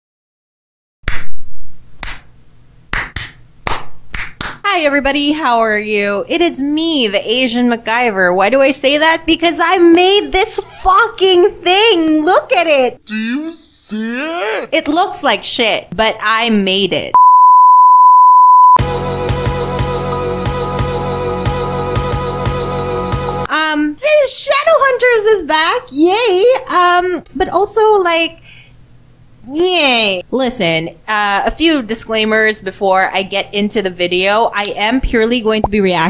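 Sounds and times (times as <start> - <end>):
hand claps: 1.1 - 1.3, 2.0 - 2.3, 2.9 - 4.6
loud electronic beep: 17.2 - 18.8
music with drum beat: 18.8 - 23.5.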